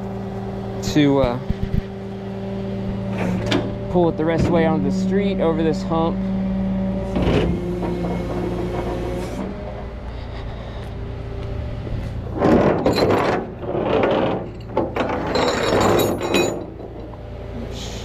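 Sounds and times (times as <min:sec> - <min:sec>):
truck engine humming: 0:00.0 - 0:18.0
metal hooks and chain clanking: 0:12.3 - 0:17.3.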